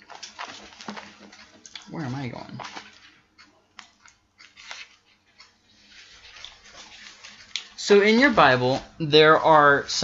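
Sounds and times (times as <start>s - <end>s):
paper pages rustling and flipping: 0.0s - 3.2s, 3.8s - 8.9s
person speaking: 1.7s - 3.8s, 7.4s - 10.0s.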